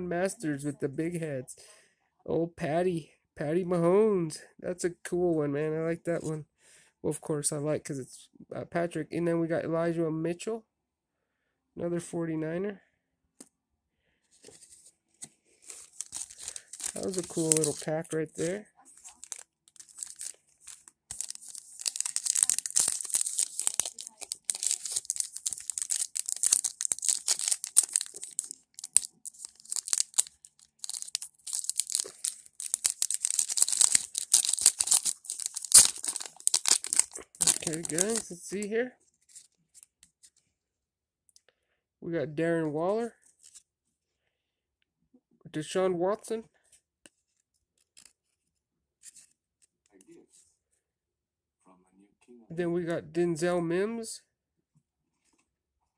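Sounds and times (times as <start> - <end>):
card pack tearing open: 15.6 - 38.4
foil wrappers crinkling: 15.6 - 38.5.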